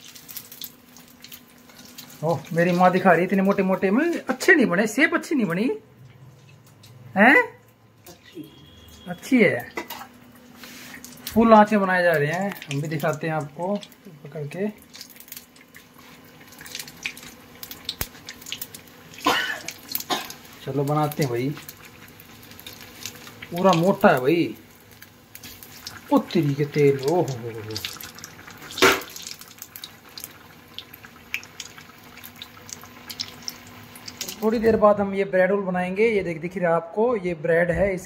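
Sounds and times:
oil sizzling and crackling: 0:00.0 - 0:34.7.

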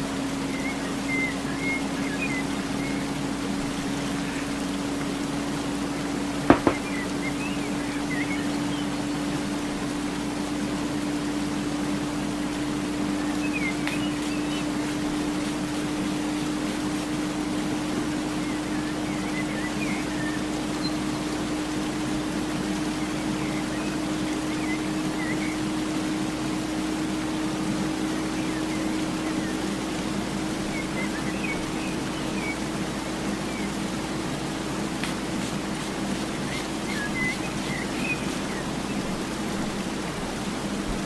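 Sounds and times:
even hiss: 0:00.0 - 0:41.0
faint high chirps: 0:06.5 - 0:09.3.

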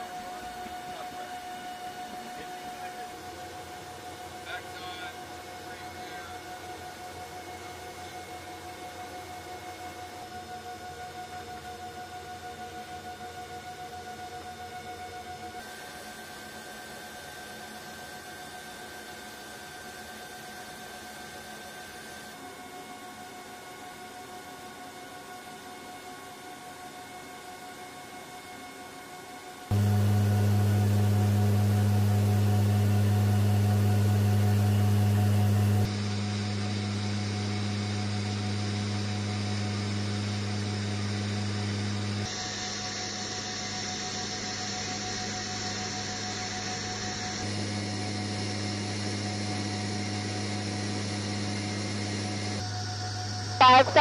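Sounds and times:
turboprop engines droning: 0:29.7 - 0:54.0.

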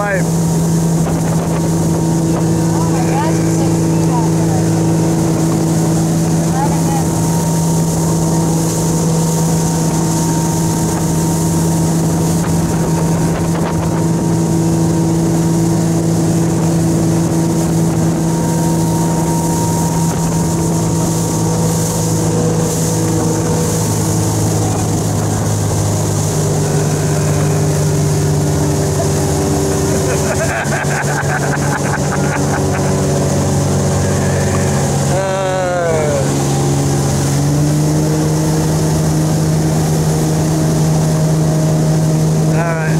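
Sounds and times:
motorboat engine running: 0:00.0 - 0:42.9
water spray from wake: 0:00.0 - 0:42.9.

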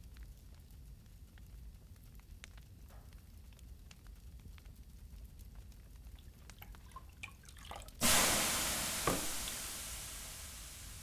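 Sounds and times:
water drips: 0:05.9 - 0:11.0
water hissing on hot stones: 0:07.9 - 0:11.0.

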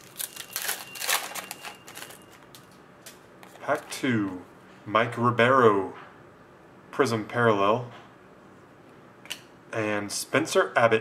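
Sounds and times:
foil wrapper tearing: 0:00.0 - 0:02.7.

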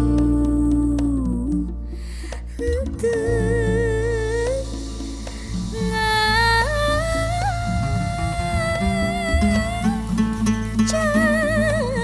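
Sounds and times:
low steady accompaniment: 0:00.0 - 0:12.0.

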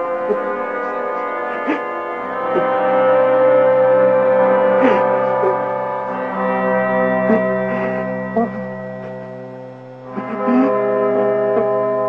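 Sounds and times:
droning metal chord: 0:00.0 - 0:12.0.

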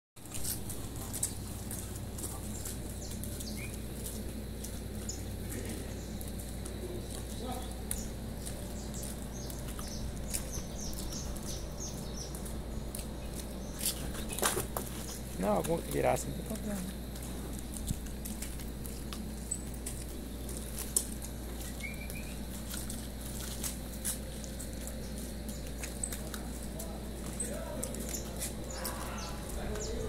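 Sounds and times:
steady low hum: 0:00.2 - 0:30.0
high bird chirps: 0:21.7 - 0:22.4.

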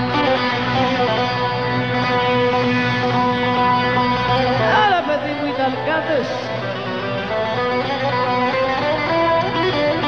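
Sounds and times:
bouzouki plucked melody: 0:00.0 - 0:10.0.

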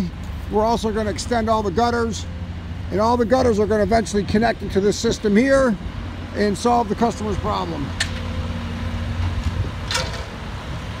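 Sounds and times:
construction machinery engines rumbling: 0:00.0 - 0:11.0.

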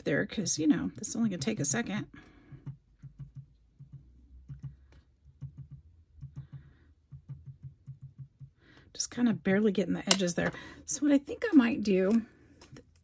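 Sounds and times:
ink dauber tapping on paper: 0:02.4 - 0:08.6.

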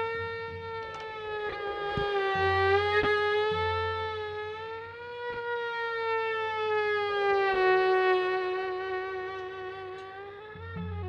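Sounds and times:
violin sustained note: 0:00.0 - 0:11.0.

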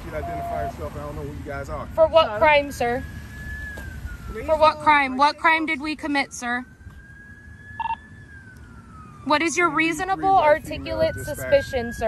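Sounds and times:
short electronic beep: 0:00.0 - 0:00.8, 0:07.8 - 0:08.0
faint siren wailing: 0:00.0 - 0:12.0.

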